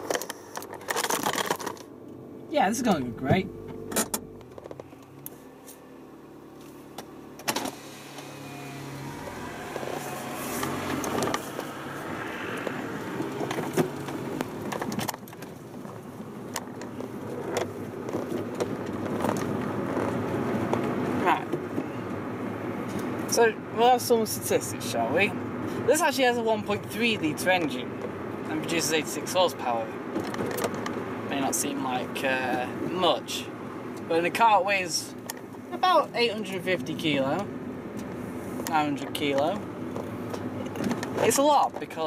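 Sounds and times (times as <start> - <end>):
tyres on road: 0.0 - 42.0
car engine accelerating: 1.3 - 32.8.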